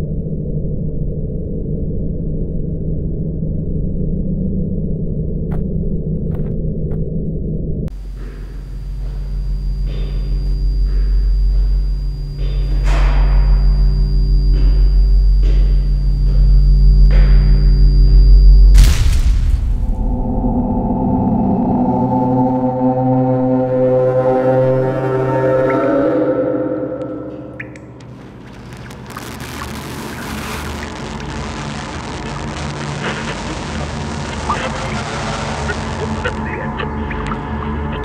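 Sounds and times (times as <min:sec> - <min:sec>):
low drone: 0:07.1 - 0:38.0
swelling hits: 0:18.6 - 0:34.5
thin high tone: 0:19.9 - 0:32.2.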